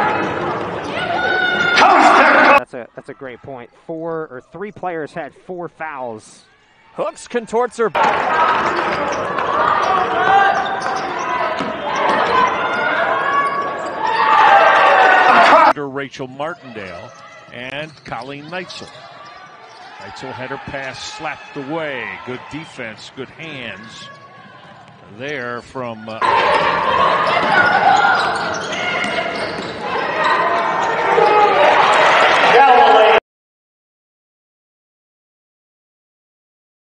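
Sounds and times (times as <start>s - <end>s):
basketball play echoing in gym: 0.0s - 2.5s, 8.0s - 15.7s, 16.9s - 21.6s, 23.4s - 25.6s, 26.2s - 32.5s
commentator talking: 1.8s - 6.4s, 15.3s - 19.0s, 20.0s - 24.1s, 25.0s - 26.2s.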